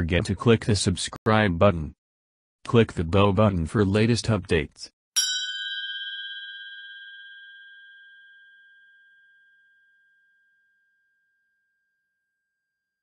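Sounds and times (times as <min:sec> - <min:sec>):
struck bell ding: 0:05.2 - 0:10.7.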